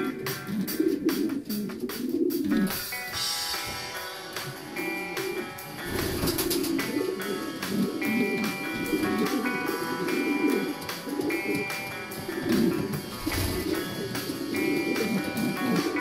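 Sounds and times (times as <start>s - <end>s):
background music: 0.0s - 16.0s
pigeon cooing: 0.0s - 16.0s.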